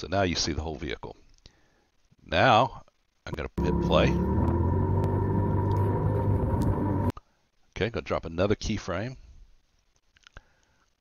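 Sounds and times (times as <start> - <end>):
vehicle engine running: 3.6 - 7.1.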